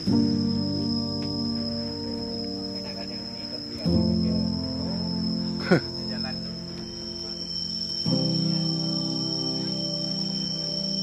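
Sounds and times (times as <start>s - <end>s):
crickets trilling: 0.0s - 11.0s
music of sustained low chords: 0.0s - 11.0s.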